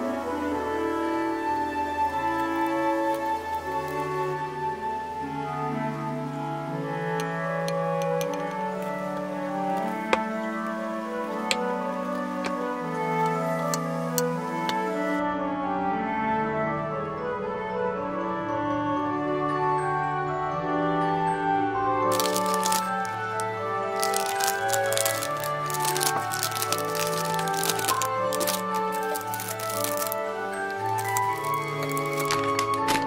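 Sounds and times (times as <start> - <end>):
instrumental background music: 0.0 - 33.0
plastic bag crinkling: 2.2 - 4.1, 22.1 - 33.0.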